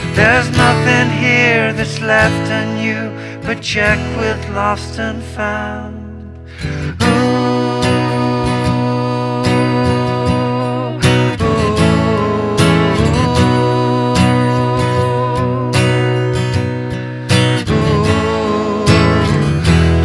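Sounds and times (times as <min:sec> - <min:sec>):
acoustic guitar chords: 0:00.0 - 0:20.0.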